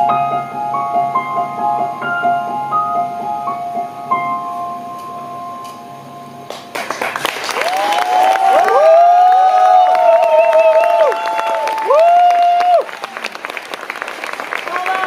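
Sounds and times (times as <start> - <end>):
piano chord: 0.0 - 6.8
audience applauding: 6.5 - 15.0
long held cheers: 7.5 - 13.6, 14.5 - 15.0.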